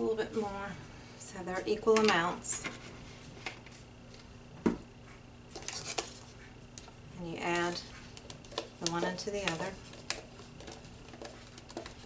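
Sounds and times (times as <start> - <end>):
plastic cups clicking and knocking: 7.7 - 12.0.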